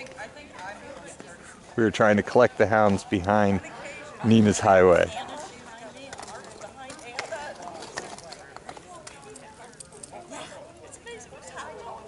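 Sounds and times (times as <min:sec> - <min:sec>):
horse hooves on paved road: 0:00.0 - 0:12.0.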